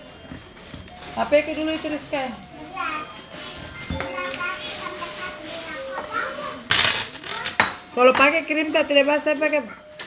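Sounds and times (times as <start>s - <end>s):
voices in a dining room: 0.1s - 10.0s
tableware clattering on glass table: 6.7s - 8.4s.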